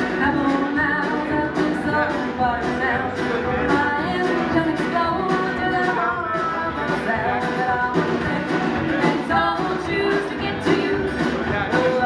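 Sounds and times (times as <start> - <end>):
banjo: 0.0 - 12.0
drums: 0.0 - 12.0
strummed acoustic guitars: 0.0 - 12.0
upright bass: 0.0 - 12.0.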